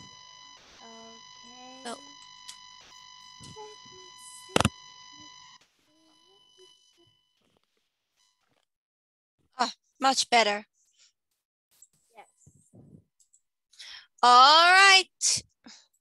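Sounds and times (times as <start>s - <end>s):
high electronic tone: 0.0s - 7.1s.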